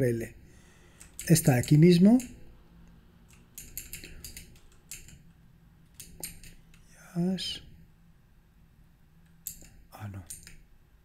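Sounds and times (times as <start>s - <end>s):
computer keyboard keystrokes: 3.3s - 5.2s, 5.9s - 6.9s, 9.4s - 10.6s.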